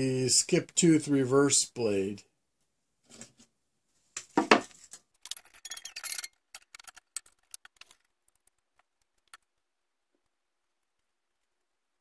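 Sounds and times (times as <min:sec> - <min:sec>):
metal saw parts clinking: 0:05.2 - 0:08.5.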